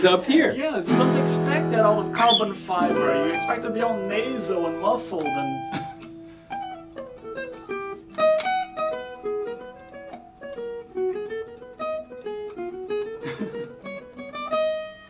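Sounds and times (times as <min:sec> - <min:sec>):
acoustic guitar fingerpicked melody: 0:00.0 - 0:15.0.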